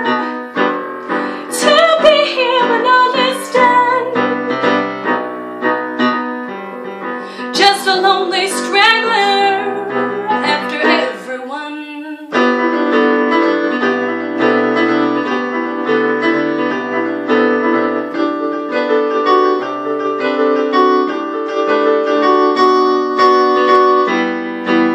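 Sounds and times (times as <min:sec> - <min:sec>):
keyboard piano chords: 0:00.0 - 0:24.9
woman singing slow song: 0:01.4 - 0:04.6, 0:07.5 - 0:12.4.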